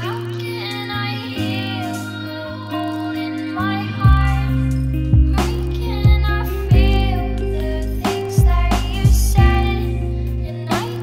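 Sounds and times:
held steady chords: 0.0 - 11.0
woman singing high: 0.0 - 11.0.

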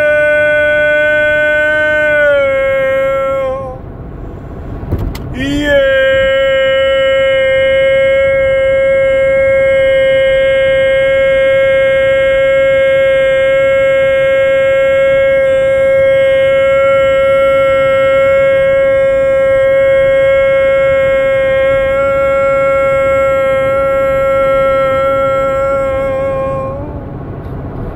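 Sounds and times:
man singing a long note: 0.0 - 3.9, 5.3 - 27.2
car road noise: 0.0 - 27.9.

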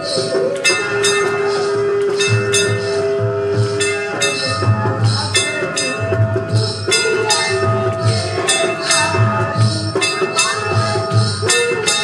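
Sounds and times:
long held note: 0.0 - 12.0
metal bells ringing: 0.0 - 12.0
low drum beating: 1.0 - 12.0.

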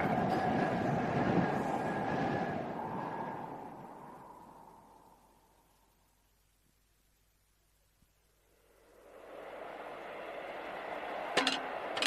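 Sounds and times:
rushing wind: 0.0 - 6.0, 8.4 - 12.0.

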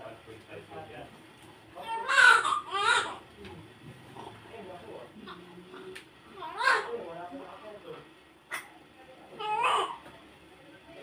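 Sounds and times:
newborn baby crying: 1.8 - 3.2, 6.4 - 6.9, 9.4 - 10.0.

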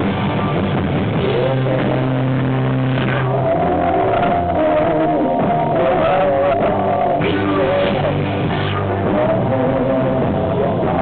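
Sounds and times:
bass guitar: 0.0 - 11.0
distorted electric guitar: 0.0 - 11.0
live rock band playing: 0.0 - 11.0.

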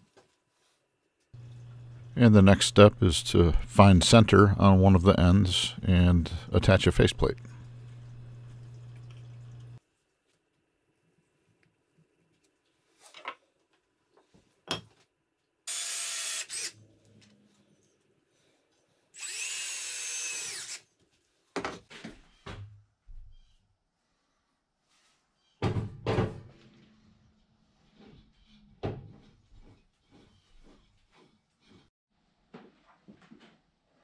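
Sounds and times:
power drill driving screws: 15.7 - 16.8, 19.2 - 20.9.

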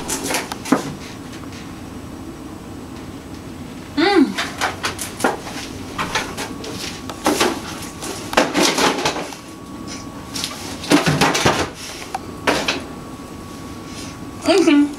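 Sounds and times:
kitchen clatter and rustling: 4.4 - 9.4, 10.8 - 11.8.

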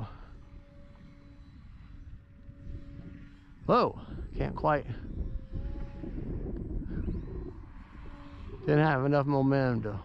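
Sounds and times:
distant model plane motor drone: 0.0 - 10.0
wind buffeting microphone: 0.0 - 10.0.

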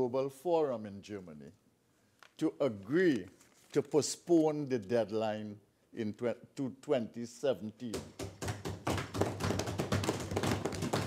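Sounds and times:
hands thumping on wooden desks: 7.9 - 11.0.

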